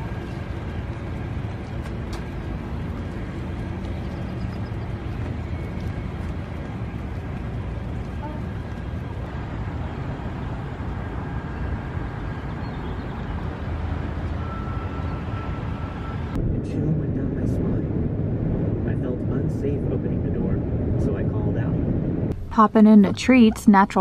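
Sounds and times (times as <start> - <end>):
road and tyre noise inside car: 0.0 - 16.4.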